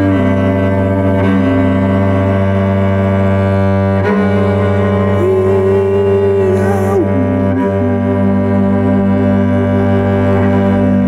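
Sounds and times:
cello holding low note: 0.0 - 11.0
upper cello note: 4.0 - 11.0.

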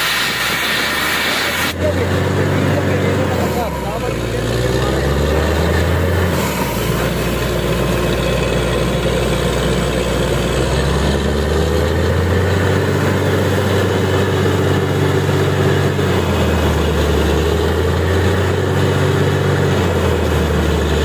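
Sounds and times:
rush of compressed air: 0.0 - 1.8
drilling rig engine drone: 0.0 - 21.0.

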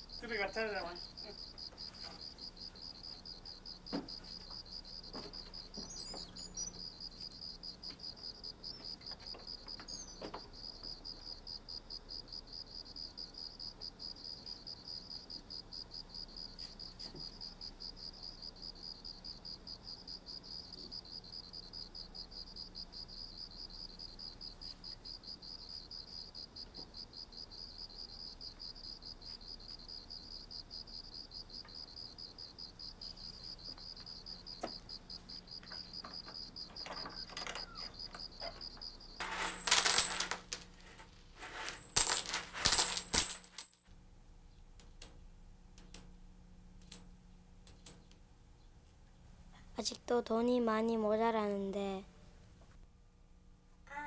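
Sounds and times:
crickets chirping: 0.0 - 43.8.

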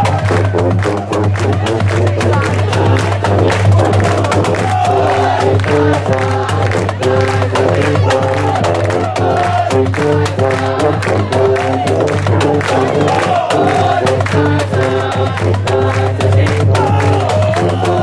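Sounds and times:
brass playing held chords: 0.0 - 18.0
marching drums: 0.0 - 18.0.

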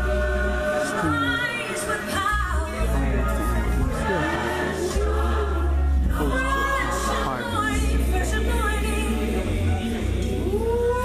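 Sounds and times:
choir singing gospel song: 0.0 - 11.0
heavy steady bass: 2.3 - 11.0.

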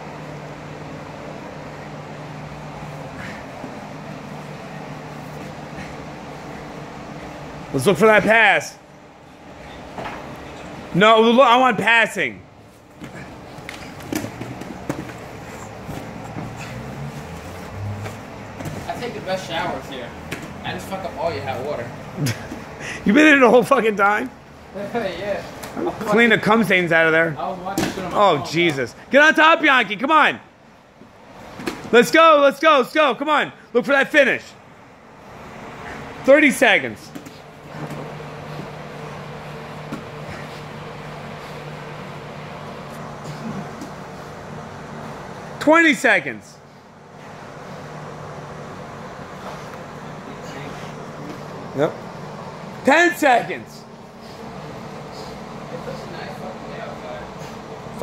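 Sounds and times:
steady low hum: 0.0 - 58.0
bodies scuffling on gym mats: 2.6 - 7.7, 12.6 - 22.8, 36.9 - 45.6.

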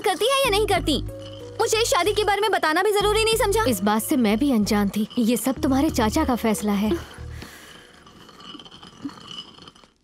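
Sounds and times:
stone grinding on stone: 0.4 - 2.3, 3.1 - 10.0.

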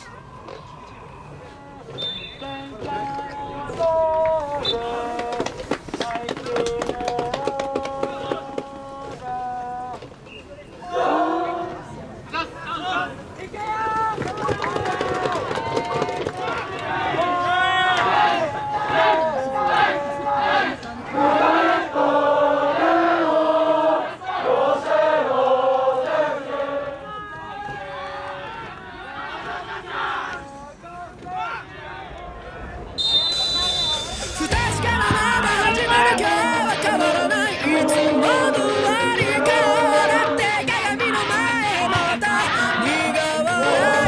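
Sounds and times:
players calling: 0.0 - 44.0
players chanting in unison: 10.8 - 12.2, 16.8 - 32.5, 34.2 - 44.0.

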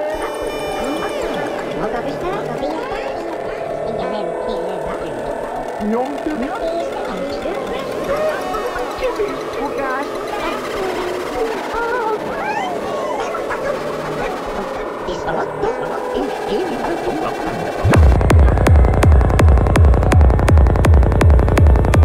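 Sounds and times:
gliding synth sounds: 0.0 - 22.0
kick drum and bassline: 17.8 - 22.0.

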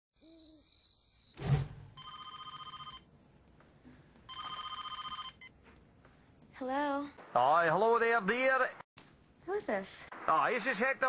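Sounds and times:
telephone ringing: 2.0 - 3.1, 4.3 - 5.6.

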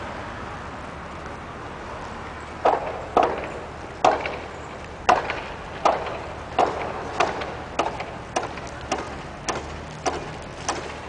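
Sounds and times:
outdoor background noise: 0.0 - 11.0
footsteps on pavement: 0.8 - 11.0.

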